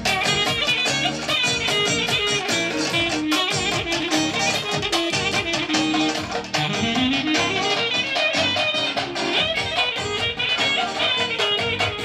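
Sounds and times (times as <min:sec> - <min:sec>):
band playing dance music: 0:00.0 - 0:12.0.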